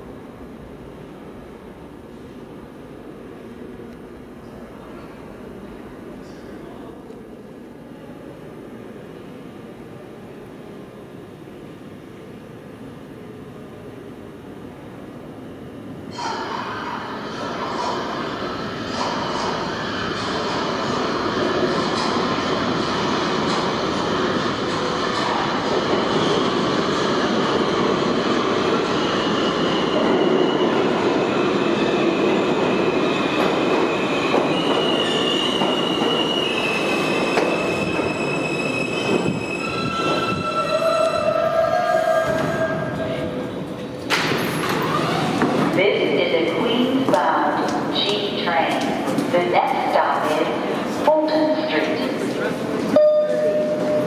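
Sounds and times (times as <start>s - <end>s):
subway train wheels rumbling: 0.0s - 54.0s
high squeals of brakes: 28.8s - 43.0s, 52.9s - 54.0s.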